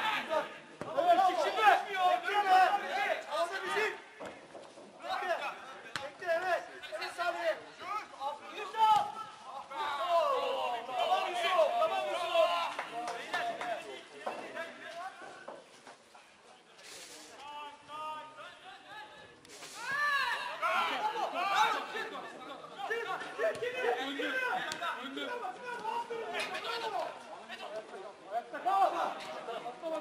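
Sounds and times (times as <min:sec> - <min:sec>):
players shouting and chattering: 0:00.0 - 0:30.0.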